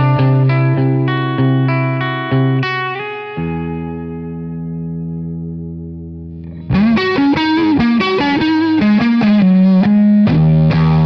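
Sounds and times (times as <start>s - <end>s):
electric guitar chord and lead: 0.0s - 11.0s.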